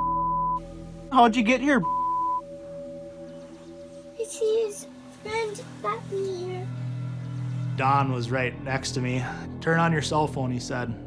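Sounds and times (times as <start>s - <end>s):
censor bleep: 0.0s - 0.6s, 1.8s - 2.4s
faint low drone: 4.9s - 11.0s.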